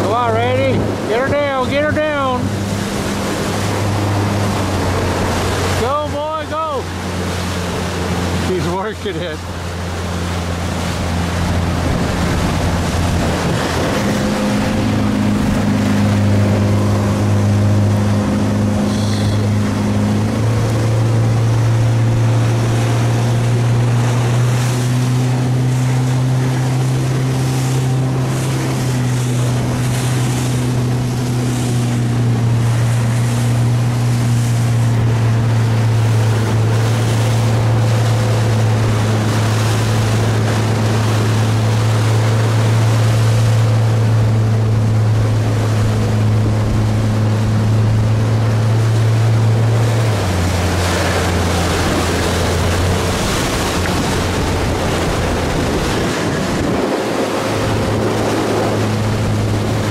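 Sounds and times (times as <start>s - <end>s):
motorboat engine running: 0.0s - 59.9s
rushing water: 0.0s - 59.9s
wind: 0.0s - 59.9s.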